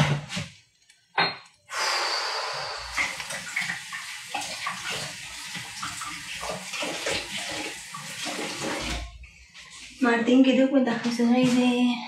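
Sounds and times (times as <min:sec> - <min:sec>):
water running from a tap: 0:01.7 - 0:09.2
water splashing into sink: 0:02.8 - 0:09.8.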